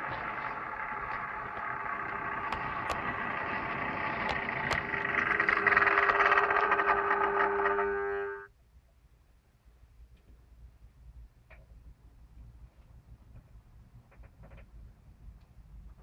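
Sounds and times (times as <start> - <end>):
model train motor hum: 0.0 - 8.5
wheel rumble on track: 0.0 - 8.5.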